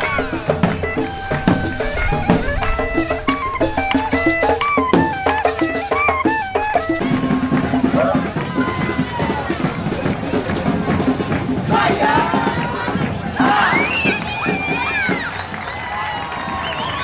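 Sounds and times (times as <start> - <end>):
cane flute melody: 0.0 - 17.0
crowd shouting and cheering: 0.0 - 17.0
drumming: 0.0 - 17.0.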